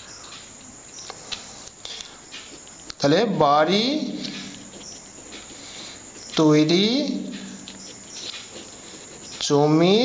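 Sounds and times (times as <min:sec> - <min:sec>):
crickets chirring: 0:00.0 - 0:10.0
man speaking: 0:03.0 - 0:04.7, 0:06.3 - 0:07.7, 0:09.4 - 0:10.0.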